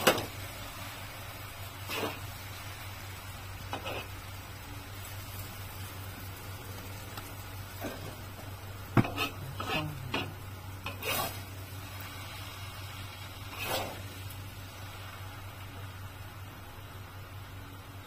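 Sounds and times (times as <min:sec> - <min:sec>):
low sizzle: 0:00.0 - 0:18.0
steady low hum: 0:00.0 - 0:18.0
metal spatula scraping wok: 0:01.8 - 0:02.2, 0:03.7 - 0:04.2, 0:09.0 - 0:11.5, 0:13.4 - 0:14.1.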